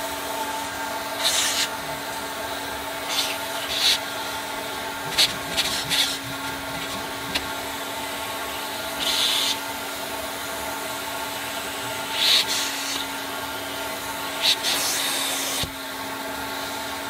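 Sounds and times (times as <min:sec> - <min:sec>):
carpet extractor motor hum: 0:00.0 - 0:17.0
short hissing bursts: 0:01.2 - 0:01.7.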